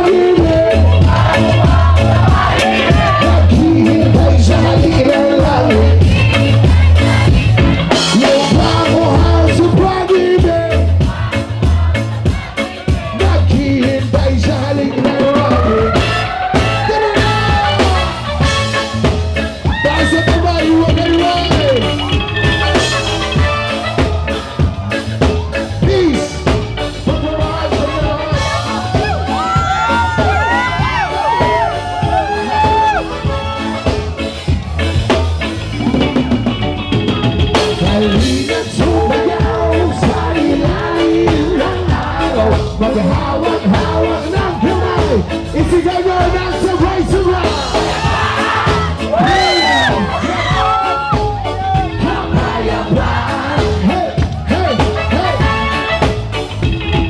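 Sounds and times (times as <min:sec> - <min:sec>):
person singing: 0:00.0 - 0:34.0, 0:37.6 - 0:56.1
crowd cheering and shouting: 0:00.0 - 0:57.0
drums: 0:00.0 - 0:57.0
reggae band playing: 0:00.0 - 0:57.0.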